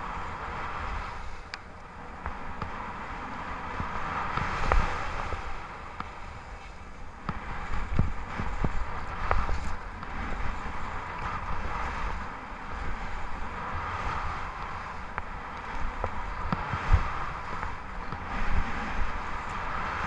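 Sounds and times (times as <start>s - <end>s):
skis scraping on snow: 0.0s - 20.0s
wind buffeting microphone: 0.0s - 20.0s.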